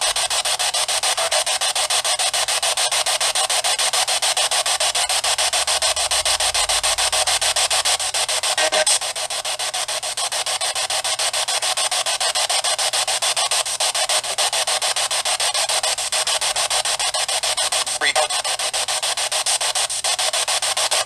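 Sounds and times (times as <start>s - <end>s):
pulsing static hiss: 0.0s - 21.0s.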